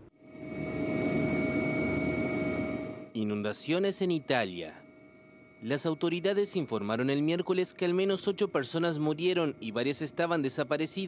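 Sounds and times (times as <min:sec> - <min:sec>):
high whining tones: 0:00.0 - 0:11.0
helicopter rotor and engine rumble: 0:00.1 - 0:03.2.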